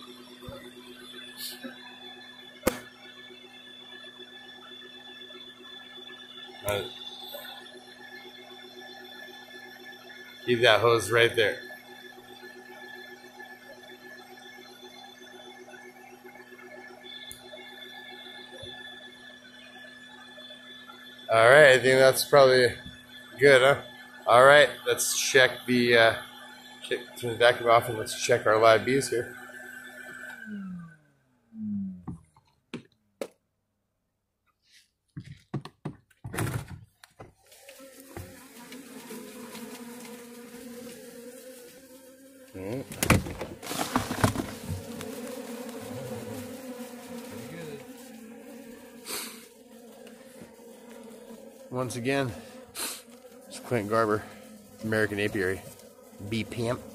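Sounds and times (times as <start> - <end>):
honeybees buzzing: 0.0 - 31.5, 37.3 - 56.9
vacuum humming with high whine: 0.0 - 32.3, 36.4 - 56.9.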